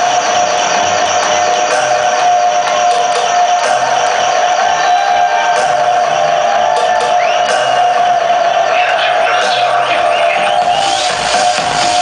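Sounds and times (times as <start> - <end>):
electronic dance music: 0.0 - 12.0
crowd shouting: 3.8 - 12.0.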